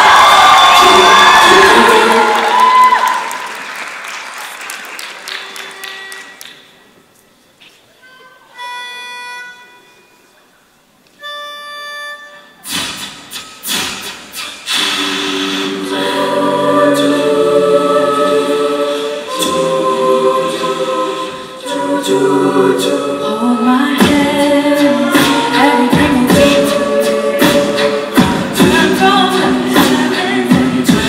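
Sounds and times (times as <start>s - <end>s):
vocal percussion: 12.6s - 31.0s
a cappella group singing: 14.7s - 31.0s.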